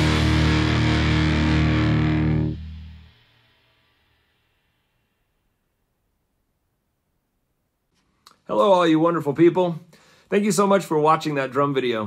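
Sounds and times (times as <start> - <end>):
distorted electric guitar chord: 0.0 - 5.3.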